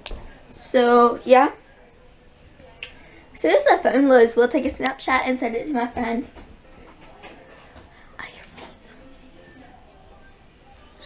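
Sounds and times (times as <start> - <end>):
young woman whispering: 8.2 - 9.0.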